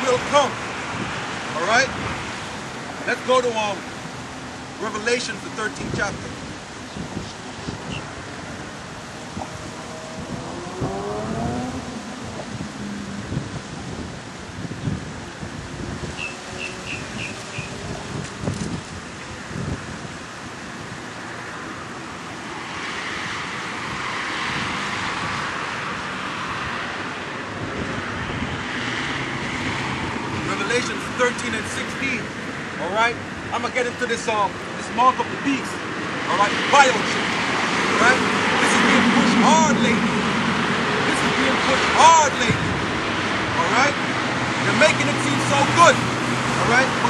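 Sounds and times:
vehicle passing: 0.0 - 18.8, 21.3 - 47.0
outdoor background noise: 0.0 - 47.0
road traffic passing: 0.0 - 47.0.

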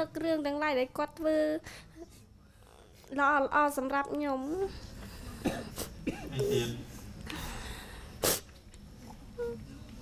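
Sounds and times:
tearful sniffs: 8.2 - 8.5.

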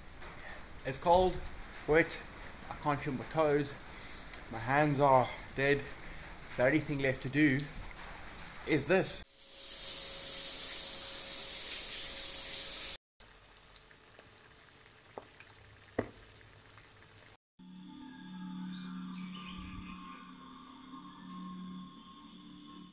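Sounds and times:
eggs sizzling in a pan: 9.3 - 17.4
shower running: 9.3 - 17.4
sharp pops of frying: 13.2 - 17.4.

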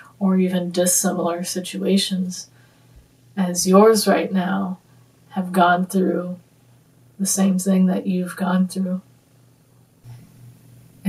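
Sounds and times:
faint low hum: 0.0 - 11.0
woman breathing in: 2.5 - 3.1.

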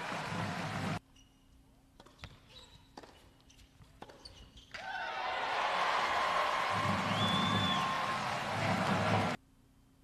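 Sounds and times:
crowd cheering: 0.0 - 1.0, 4.8 - 9.4.

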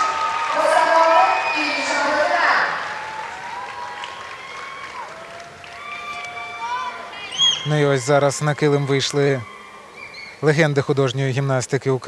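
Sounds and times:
audience applause: 0.0 - 9.6.

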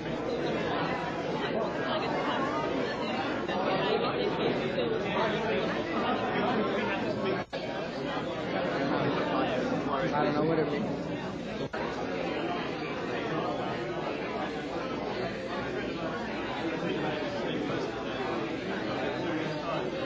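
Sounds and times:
crowd chatter: 0.0 - 20.0.

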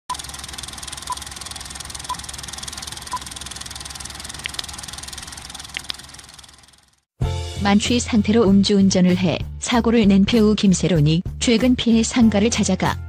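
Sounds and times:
film projector clatter: 0.1 - 7.0
faint ticks: 5.7 - 6.1.

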